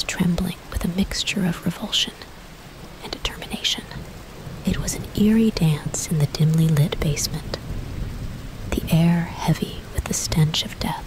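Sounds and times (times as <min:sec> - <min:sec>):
person speaking softly: 0:00.0 - 0:02.3, 0:03.0 - 0:04.0, 0:04.7 - 0:07.6, 0:08.7 - 0:11.0.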